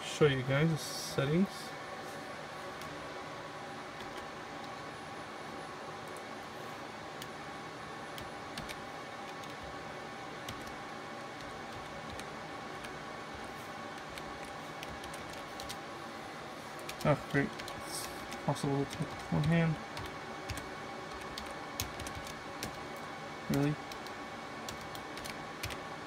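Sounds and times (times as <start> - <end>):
server cooling fans humming: 0.0 - 26.0.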